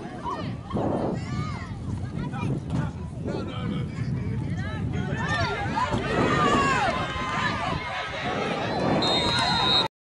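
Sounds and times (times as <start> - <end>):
spectators yelling and cheering: 4.8 - 9.9.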